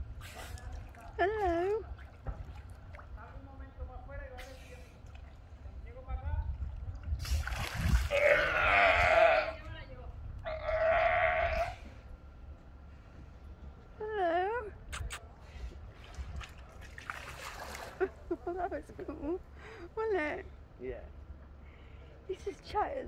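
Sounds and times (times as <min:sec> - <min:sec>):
water splash: 0:07.2 - 0:08.2, 0:16.4 - 0:18.1
sea lion hoarse calls: 0:08.1 - 0:09.6, 0:10.4 - 0:11.9.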